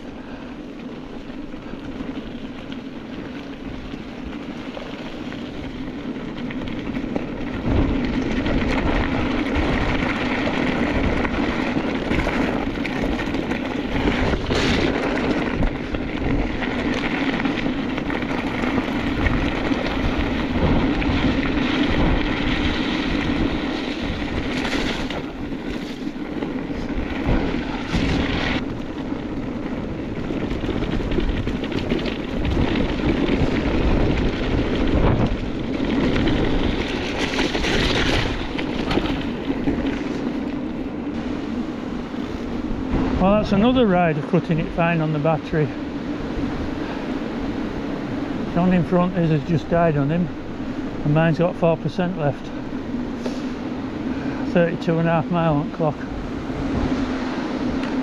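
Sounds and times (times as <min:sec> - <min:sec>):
bike tyres rolling on gravel: 0:00.0 - 0:58.0
steady low hum: 0:00.0 - 0:58.0
wind buffeting microphone: 0:00.0 - 0:58.0
clatters from bumps: 0:03.4 - 0:28.9, 0:30.0 - 0:40.8.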